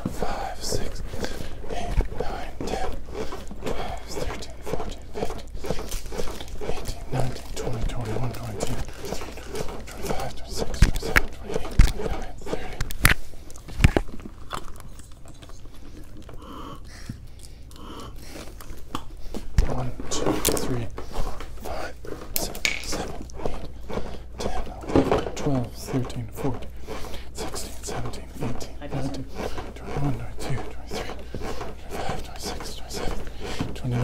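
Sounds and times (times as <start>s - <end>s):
low talk: 6.6s - 12.8s, 24.4s - 26.7s, 27.4s - 31.2s.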